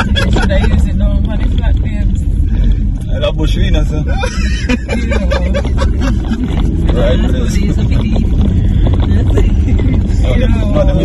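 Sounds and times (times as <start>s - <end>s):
people talking: 0.0s - 2.3s, 3.1s - 11.0s
car engine and tyres rumbling: 0.0s - 11.0s.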